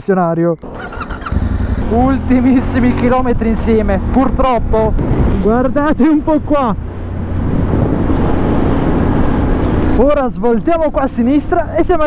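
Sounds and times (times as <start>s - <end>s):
motorcycle engine cruising: 0.6s - 10.2s
road noise: 0.6s - 12.0s
wind noise: 2.9s - 10.5s.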